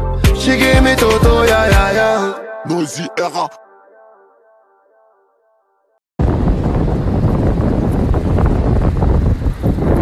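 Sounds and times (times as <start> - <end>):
wind buffeting microphone: 6.2 - 10.0.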